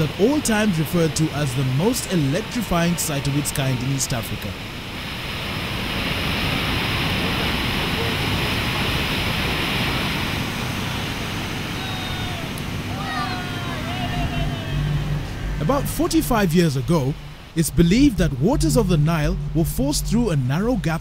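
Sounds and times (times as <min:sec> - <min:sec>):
rush of falling water: 0:00.0 - 0:21.0.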